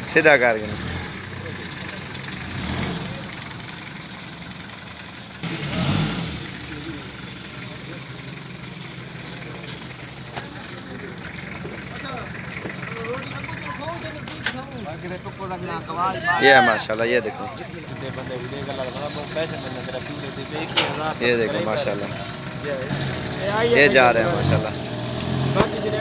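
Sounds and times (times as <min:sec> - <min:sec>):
truck engine idling: 0:00.0 - 0:26.0
faint voices: 0:06.4 - 0:24.8.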